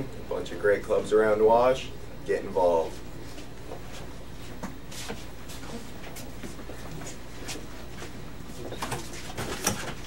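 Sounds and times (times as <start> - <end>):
footsteps: 2.8 - 10.0.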